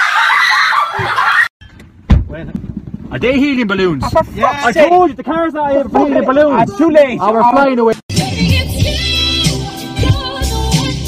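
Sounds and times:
loud low thump: 1.8 - 3.1.

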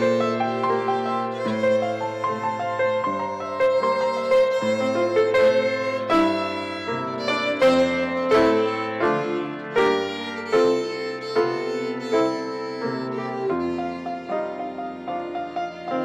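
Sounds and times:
piano accompaniment: 0.0 - 16.0
violin melody: 0.0 - 16.0.

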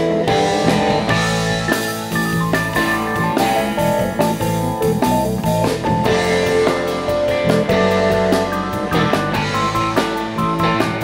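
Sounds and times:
bass: 0.0 - 11.0
drums: 0.0 - 11.0
electric guitar lines: 0.0 - 11.0
keyboards: 0.0 - 11.0.

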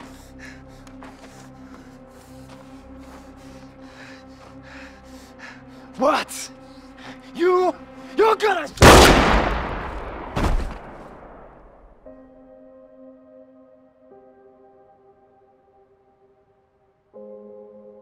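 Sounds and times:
pistol gunshot with echo: 8.8 - 11.4.

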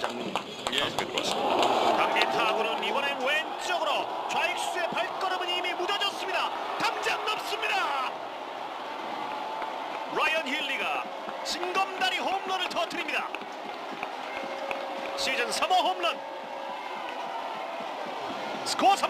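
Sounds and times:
stadium crowd din: 0.0 - 19.0
commentators talking: 0.8 - 8.3.

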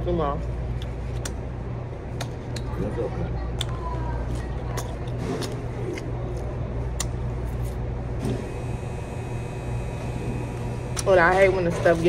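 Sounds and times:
restaurant background rumble: 0.0 - 12.0.

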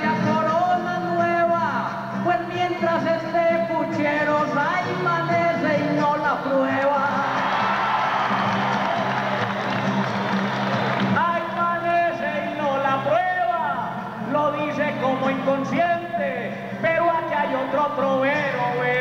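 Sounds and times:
acoustic guitar strumming: 0.0 - 19.0
crowd cheering and applauding: 7.0 - 11.9.

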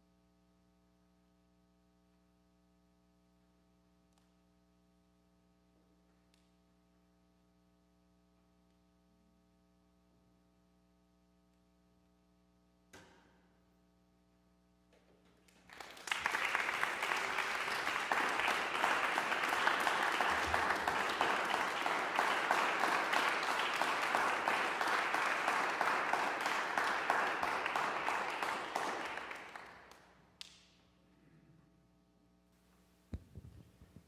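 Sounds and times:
audience applauding: 15.6 - 30.2.

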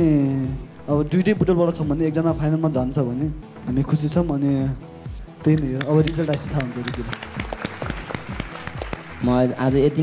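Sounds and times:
bass beat of background music: 0.0 - 10.0
people clapping: 5.5 - 10.0.

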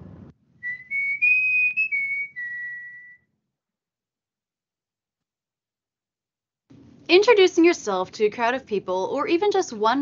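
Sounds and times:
whistled tune: 0.6 - 3.5.

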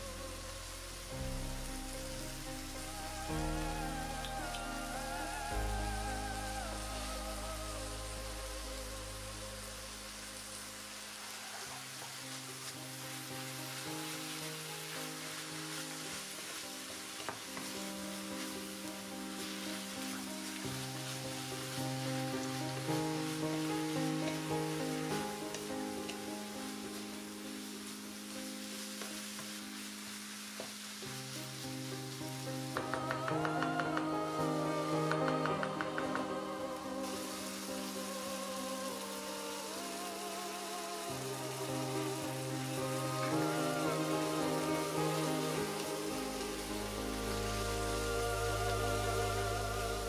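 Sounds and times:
soft background music: 0.0 - 50.0
vegetables sizzling in a pan: 0.0 - 50.0.

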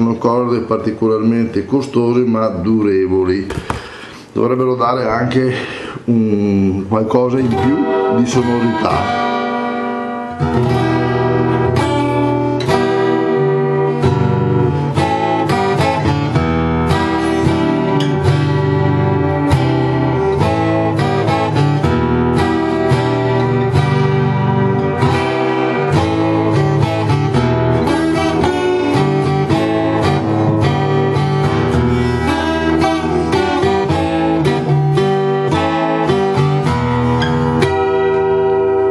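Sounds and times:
acoustic guitar chords: 0.0 - 4.3, 5.0 - 38.9.

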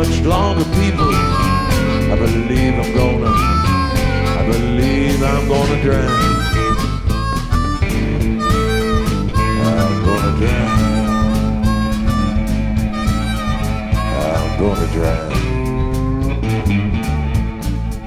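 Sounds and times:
electric and acoustic guitars: 0.0 - 18.0
harmonica bent notes: 0.0 - 18.0.

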